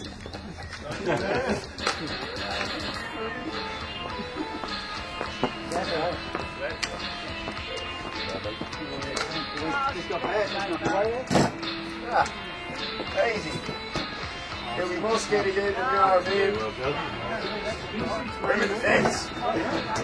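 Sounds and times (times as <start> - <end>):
music playing: 0.0 - 20.0
people talking: 14.7 - 20.0.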